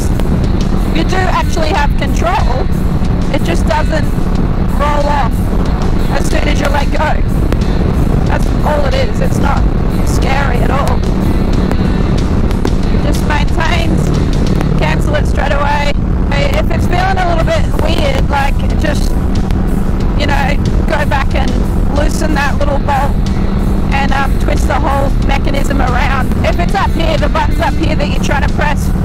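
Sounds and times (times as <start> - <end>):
motorcycle engine cruising: 0.0 - 29.0
road noise: 0.0 - 29.0
wind noise: 0.0 - 29.0.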